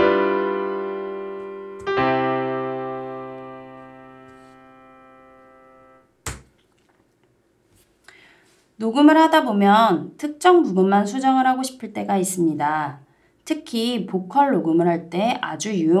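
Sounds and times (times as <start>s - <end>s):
piano chords: 0.0s - 6.2s.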